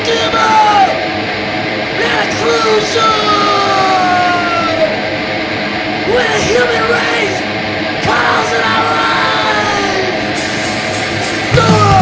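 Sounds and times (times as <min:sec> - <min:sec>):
hardcore punk music: 0:00.0 - 0:12.0
shouted vocals: 0:02.0 - 0:05.0, 0:08.0 - 0:10.2, 0:11.5 - 0:12.0.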